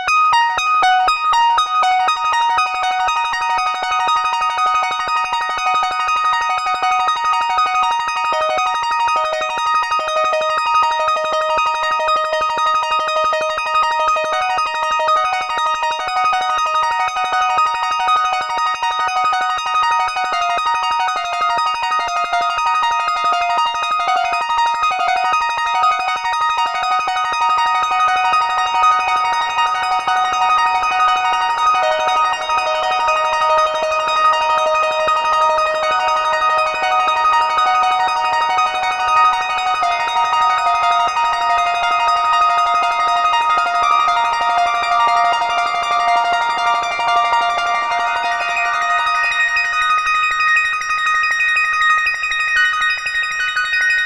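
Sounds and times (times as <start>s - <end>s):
synthesizer arpeggio with echoes: 0.0s - 51.5s.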